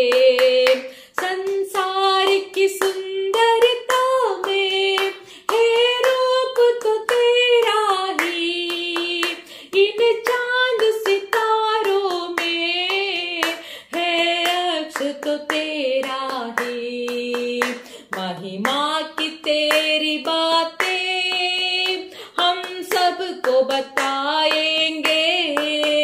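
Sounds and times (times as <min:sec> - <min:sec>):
hands clapping: 0:00.0 - 0:26.0
woman singing: 0:00.0 - 0:26.0.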